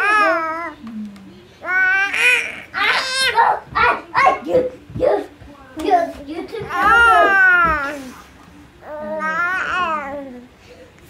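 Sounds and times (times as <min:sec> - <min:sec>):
baby babbling: 0:01.6 - 0:04.0, 0:06.7 - 0:08.0, 0:08.8 - 0:10.5.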